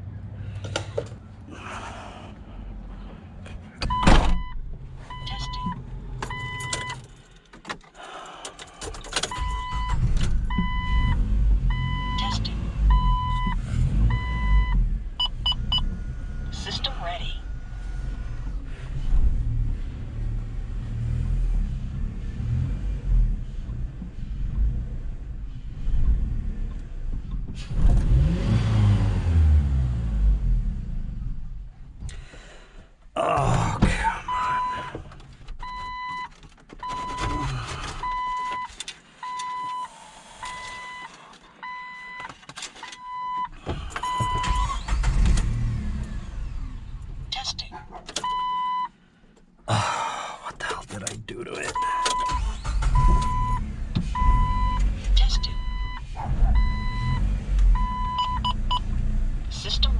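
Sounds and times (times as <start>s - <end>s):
vehicle warning chime beeping: 3.9s - 7.1s, 9.3s - 18.5s, 34.3s - 35.0s, 35.6s - 45.2s, 48.2s - 49.0s, 50.6s - 58.9s
car hood slamming shut: 4.0s - 4.4s.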